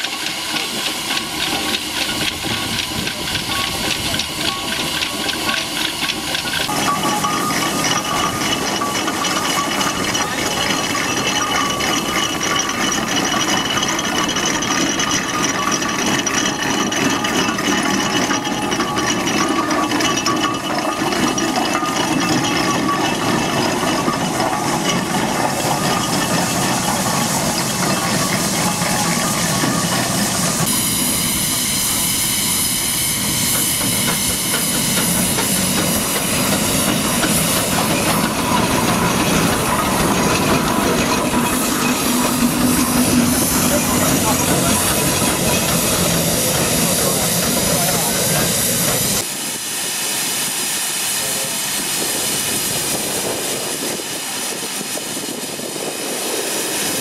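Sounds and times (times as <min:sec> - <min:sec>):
hissing steam: 0:00.0 - 0:57.0
steam engine clatter: 0:00.0 - 0:57.0.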